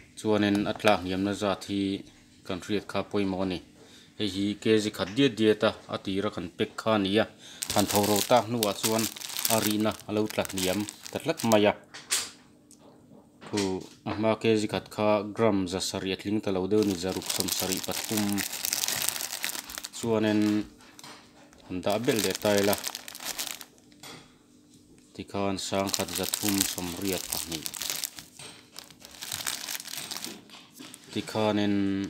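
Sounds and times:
people talking: 4.2s - 11.8s, 13.6s - 18.4s, 20.0s - 20.7s, 21.7s - 22.8s, 25.2s - 27.6s, 31.2s - 32.0s
plastic bag crinkling: 7.6s - 11.6s, 16.7s - 21.1s, 21.8s - 23.8s, 25.7s - 31.2s
person speaking: 7.6s - 11.8s, 16.3s - 20.7s, 21.7s - 23.6s, 25.2s - 30.3s.

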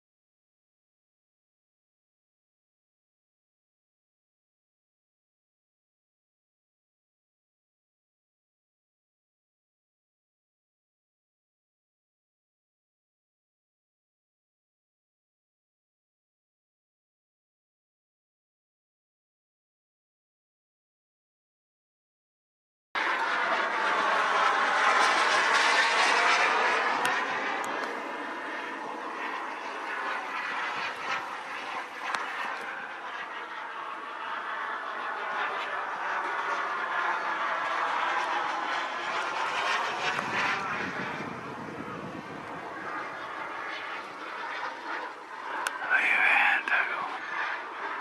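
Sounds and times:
model jet turbine flying past: 23.0s - 48.0s.

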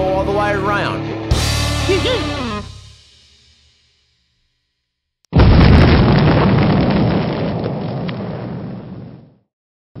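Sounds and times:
sharp crackles: 5.3s - 9.3s
explosion roar and rumble: 5.3s - 9.4s.

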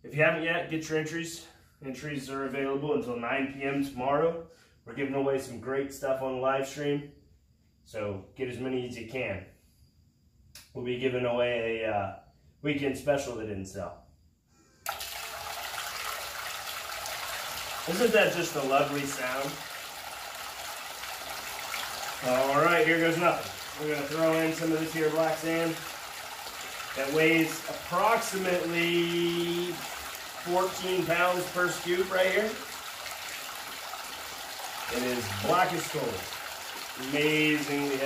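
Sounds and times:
water rushing through sluice: 14.9s - 38.0s
water splashing into tub: 14.9s - 38.0s.

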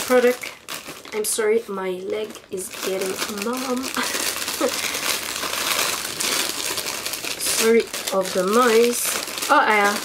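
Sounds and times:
packaging crinkling: 0.0s - 10.0s.

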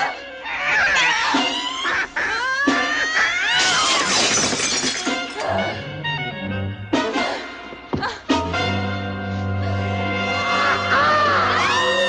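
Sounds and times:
frantic horror music: 0.0s - 4.6s, 8.2s - 12.0s
shrill shrieks: 11.0s - 12.0s.

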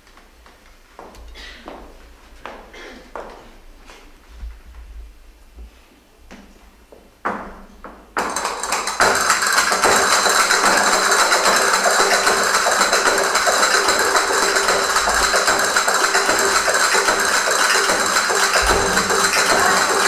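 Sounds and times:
flamenco music: 8.0s - 20.0s
fast percussive taps: 8.2s - 20.0s.

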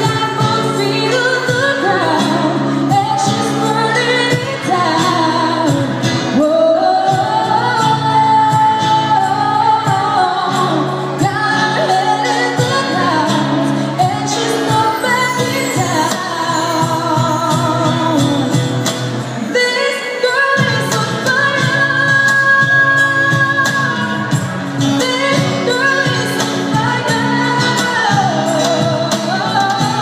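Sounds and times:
acoustic guitar chords: 0.0s - 30.0s
woman singing: 0.0s - 30.0s.

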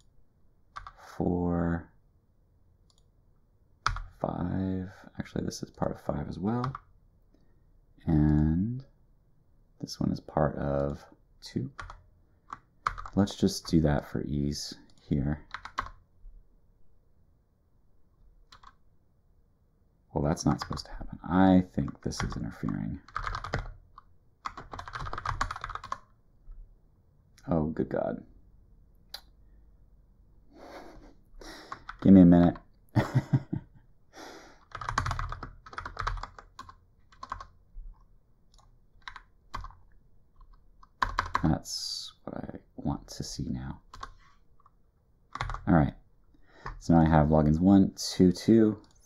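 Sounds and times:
typing on computer keyboard: 0.8s - 1.0s, 3.8s - 4.1s, 6.6s - 6.9s, 11.8s - 13.8s, 15.5s - 16.0s, 18.5s - 18.8s, 23.0s - 23.8s, 24.4s - 26.1s, 31.7s - 32.1s, 34.6s - 37.6s, 38.5s - 39.8s, 40.4s - 41.5s, 43.9s - 44.7s, 45.3s - 45.6s
man speaking: 1.0s - 2.0s, 4.2s - 6.8s, 8.0s - 8.9s, 9.8s - 11.8s, 13.1s - 15.5s, 20.1s - 23.1s, 27.4s - 28.3s, 32.0s - 33.4s, 41.4s - 43.8s, 45.6s - 46.0s, 46.8s - 49.0s.

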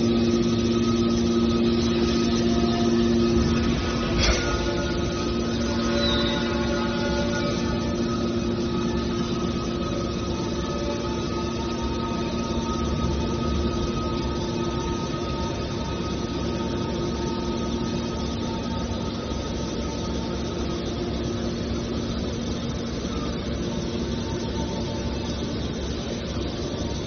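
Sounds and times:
hydraulic baler drone and hum: 0.0s - 27.0s.

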